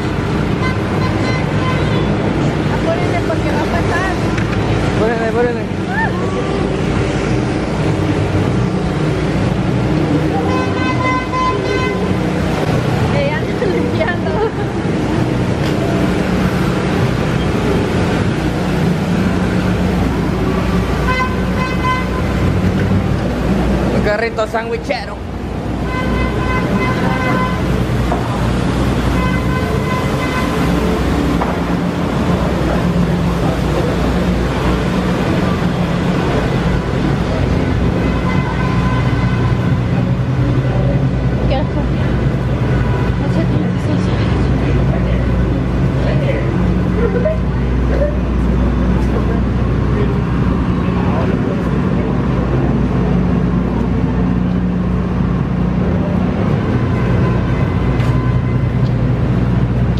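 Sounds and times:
crowd din: 0.0 - 59.9
traffic: 0.0 - 59.9
vehicle engine rumbling: 0.0 - 59.9.

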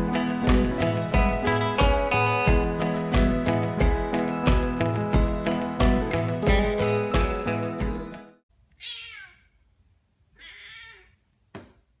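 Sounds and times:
cat meowing: 8.8 - 9.5, 10.4 - 11.2.

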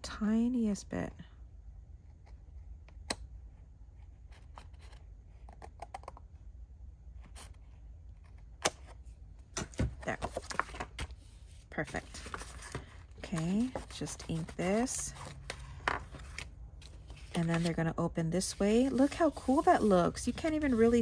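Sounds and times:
paper handling: 9.6 - 21.0.

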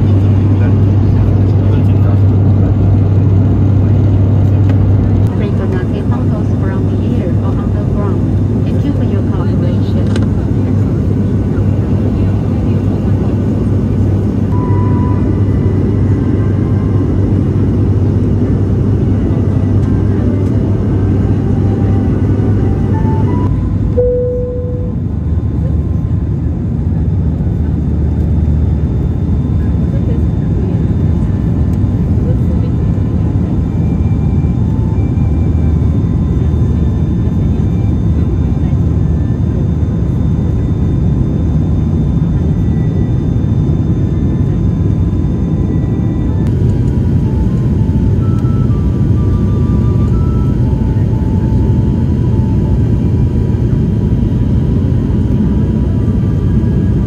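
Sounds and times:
turboprop cabin hum: 0.0 - 57.0
short tone: 14.5 - 17.0, 21.4 - 25.7, 47.2 - 53.2.

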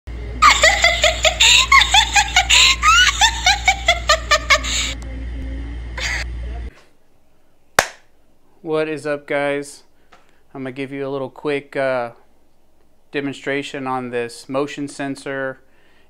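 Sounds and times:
steady low hum: 0.1 - 16.0
rapid high-pitched laughter: 0.4 - 5.0.

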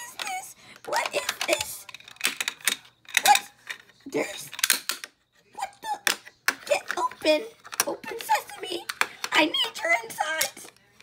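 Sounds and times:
toy package clicks and crinkles: 0.0 - 5.1.

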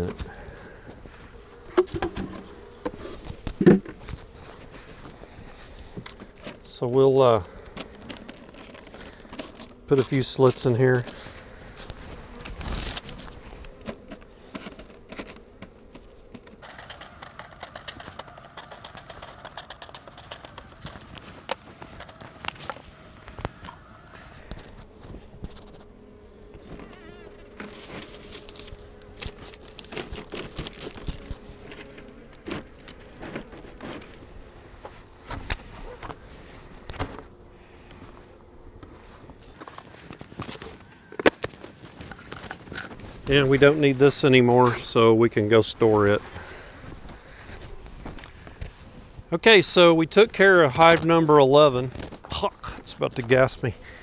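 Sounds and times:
honey bees buzzing: 0.0 - 54.0
wooden hive boxes knocking: 1.6 - 4.1.

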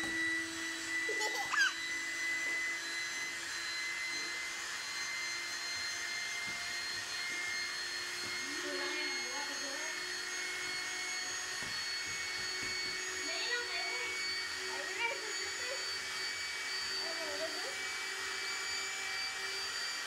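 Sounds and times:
electric air pump running: 0.0 - 20.0.

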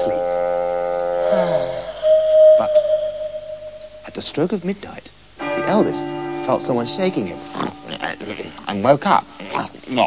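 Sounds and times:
steady whistle-like note: 0.0 - 6.6.

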